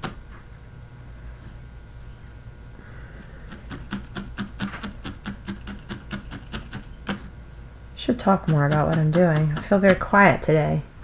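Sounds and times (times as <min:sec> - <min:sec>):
felting needle stabbing wool: 0:03.5 - 0:07.3, 0:08.3 - 0:10.2.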